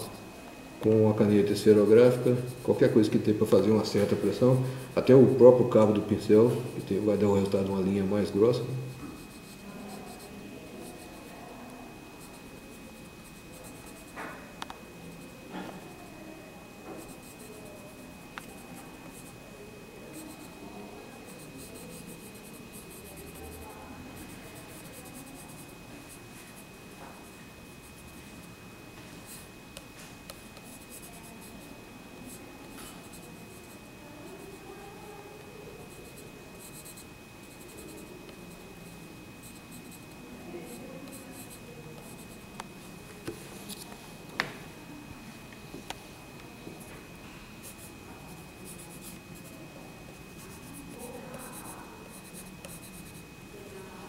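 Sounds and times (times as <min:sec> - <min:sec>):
pencil scribbling on paper: 0:08.8 - 0:11.3, 0:16.9 - 0:17.9, 0:21.2 - 0:23.6, 0:24.2 - 0:26.6, 0:30.6 - 0:31.5, 0:47.6 - 0:49.6.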